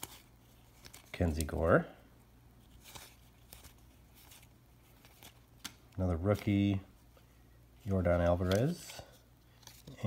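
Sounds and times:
trading cards sliding and flicking: 0:00.0 - 0:01.6, 0:02.6 - 0:06.6.

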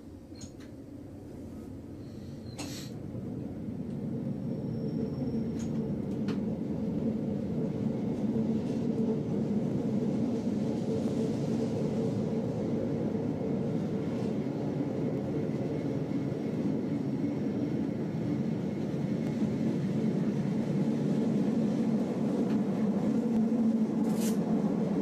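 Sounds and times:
train wheels rumbling on rails: 0:00.0 - 0:25.0.

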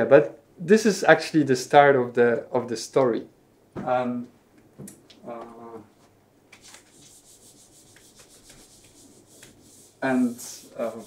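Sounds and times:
marker scratching on whiteboard: 0:06.6 - 0:11.0.

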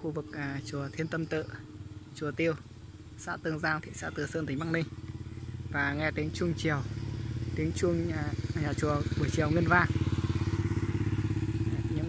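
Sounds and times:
motorbike engine running: 0:00.0 - 0:12.0.

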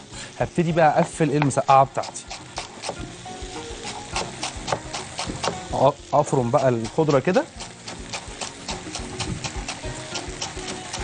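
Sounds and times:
knife chopping on wooden board: 0:01.4 - 0:03.2, 0:03.9 - 0:05.7, 0:06.6 - 0:11.0.

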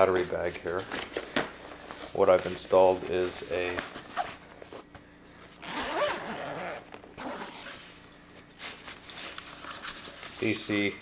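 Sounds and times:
zipper pulled open: 0:05.6 - 0:07.9.

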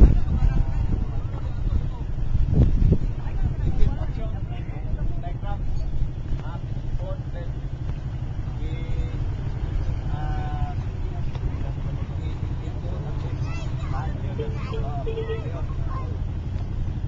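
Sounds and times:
distant voices talking and calling: 0:00.0 - 0:17.0
steady low rumble: 0:00.0 - 0:17.0.

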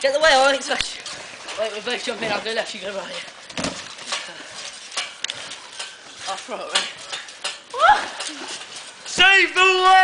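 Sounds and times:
bare feet splashing on wet trampoline: 0:00.0 - 0:10.0.

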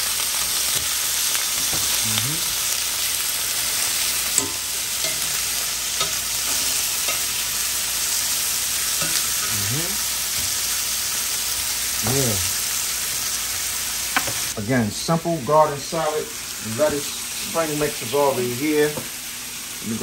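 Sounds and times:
food sizzling in hot oil: 0:00.0 - 0:20.0
metal tongs clicking on pan: 0:04.3 - 0:05.4, 0:06.0 - 0:07.4, 0:09.0 - 0:09.5.

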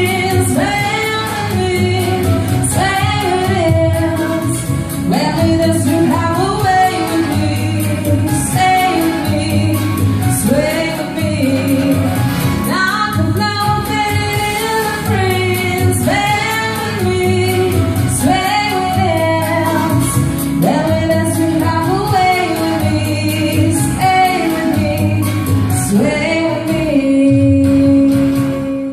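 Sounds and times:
backing music with beat and bass: 0:00.0 - 0:28.9
woman singing into microphone: 0:00.0 - 0:28.9.

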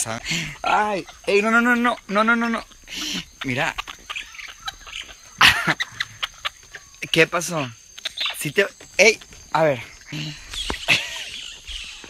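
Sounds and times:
monkey shrill cry: 0:07.3 - 0:08.6.

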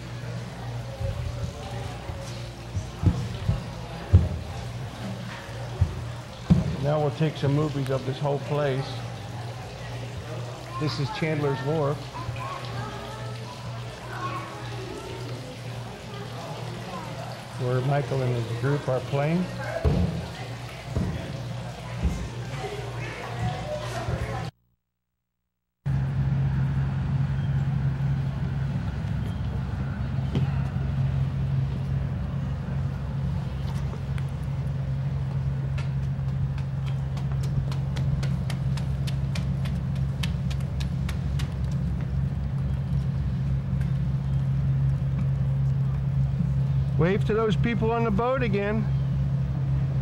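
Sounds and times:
murmur of background voices: 0:00.0 - 0:24.5
footsteps on wooden boardwalk: 0:01.0 - 0:06.8
low drone: 0:25.9 - 0:48.2
low hum: 0:25.9 - 0:50.0.

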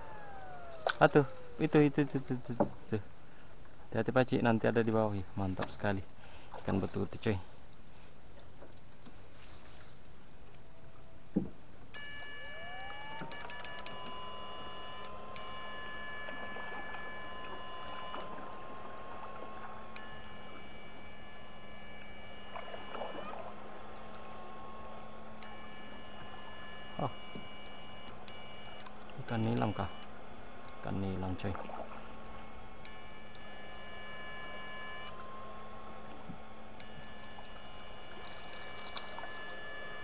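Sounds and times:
higher tones cutting in and out: 0:00.0 - 0:02.6
electric fishing shocker whining: 0:00.0 - 0:03.4, 0:11.9 - 0:40.0
low hum: 0:00.0 - 0:40.0.

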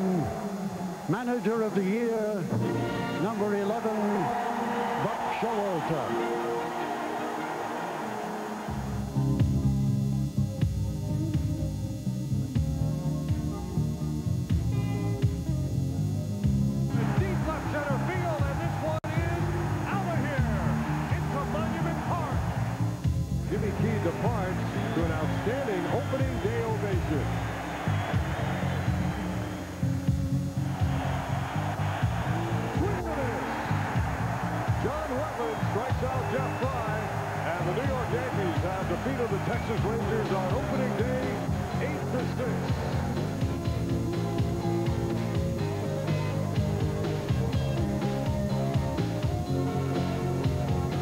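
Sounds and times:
background music: 0:00.0 - 0:51.0.

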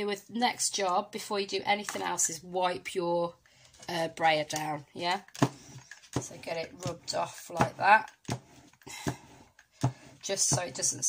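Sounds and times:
rubber roller rubbing: 0:05.5 - 0:11.0.

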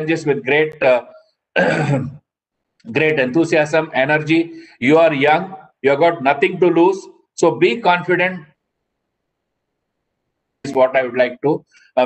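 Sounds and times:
man clearing throat: 0:01.6 - 0:02.3.

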